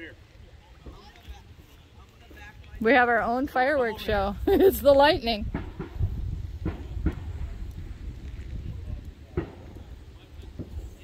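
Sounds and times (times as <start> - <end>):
wind rumbling on microphone: 2.4 - 11.0.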